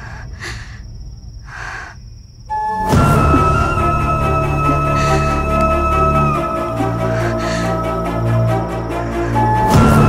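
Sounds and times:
person breathing: 0:00.0 - 0:02.1, 0:03.0 - 0:09.8
steady low rumble: 0:00.0 - 0:10.0.

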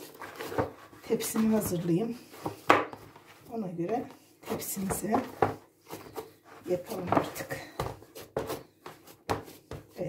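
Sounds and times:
person speaking: 0:01.0 - 0:02.3, 0:03.4 - 0:05.6, 0:06.6 - 0:08.0.

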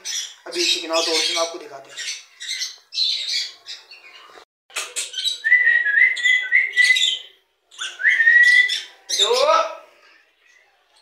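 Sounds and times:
birds chirping and squawking: 0:00.0 - 0:11.0.

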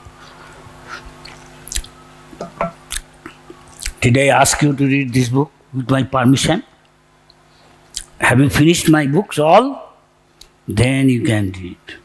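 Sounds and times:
low electrical hum: 0:00.0 - 0:12.0
wet mouth clicks and lip smacks: 0:01.2 - 0:01.9, 0:02.9 - 0:04.0, 0:07.9 - 0:08.2.

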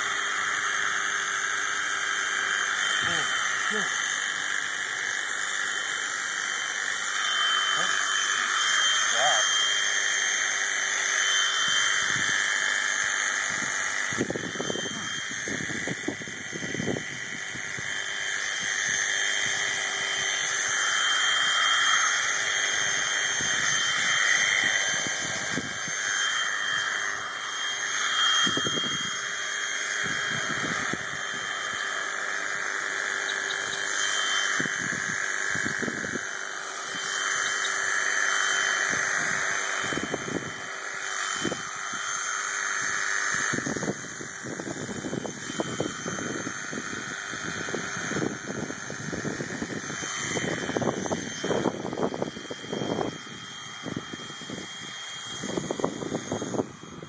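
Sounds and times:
electric shears motor whine: 0:00.0 - 0:57.0.

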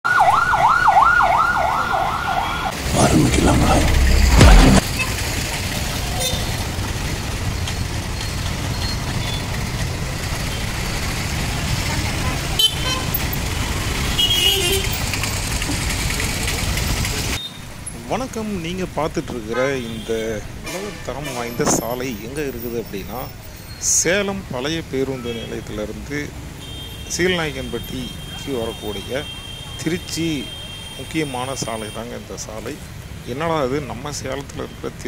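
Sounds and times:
ambulance siren yelping: 0:00.0 - 0:02.8
street traffic noise: 0:00.0 - 0:35.0
deep vehicle rumble: 0:02.8 - 0:19.8.

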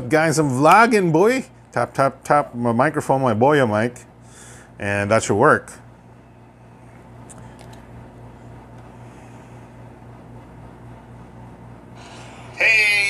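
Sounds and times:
air conditioner humming: 0:00.0 - 0:13.0.

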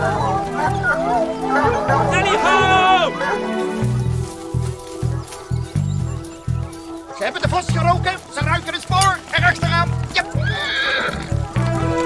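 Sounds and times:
horse whinnying: 0:08.4 - 0:12.0.

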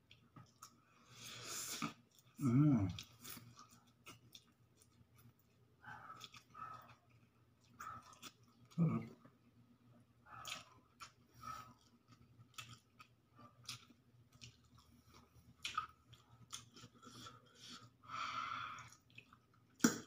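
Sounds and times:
person chewing noodles: 0:00.0 - 0:09.3, 0:10.3 - 0:18.0, 0:18.7 - 0:20.0.

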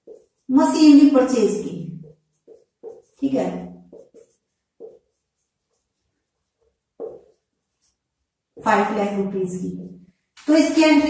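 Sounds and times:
marker pen writing on whiteboard: 0:00.0 - 0:11.0.

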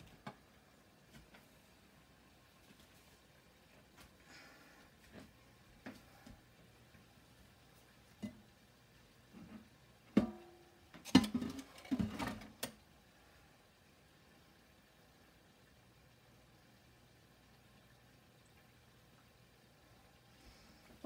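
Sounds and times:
sharp knocks and clattering: 0:09.5 - 0:12.7.

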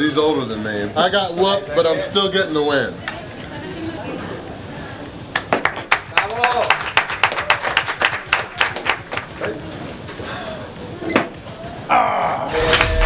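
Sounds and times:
people clapping: 0:05.3 - 0:09.7.

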